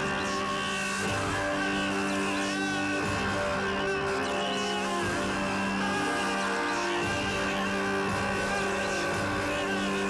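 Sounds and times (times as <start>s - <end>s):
electronic music sustained tones: 0.0s - 10.0s.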